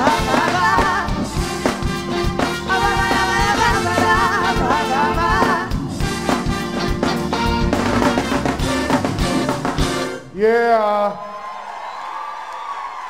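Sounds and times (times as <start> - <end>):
soul band playing: 0.0 - 10.4
person calling out: 10.3 - 11.2.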